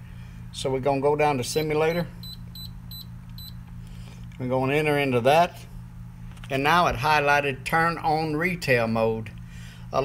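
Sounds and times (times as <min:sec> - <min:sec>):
short high key beeps: 0:01.6 - 0:03.6.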